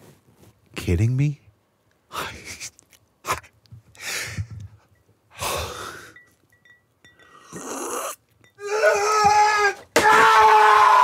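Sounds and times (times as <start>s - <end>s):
man screaming in rage: 8.6s - 11.0s.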